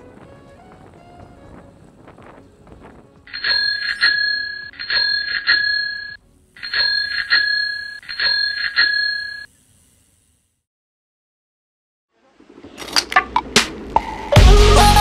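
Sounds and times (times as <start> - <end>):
bicycle bell dings: 3.3 - 9.5.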